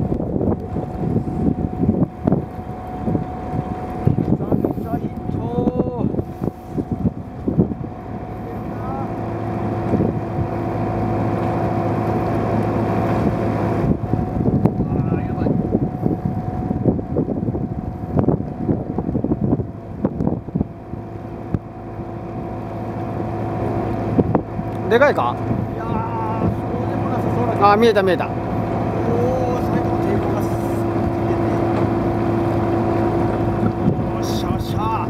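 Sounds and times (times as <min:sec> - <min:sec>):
boat engine idling: 0:00.0 - 0:35.0.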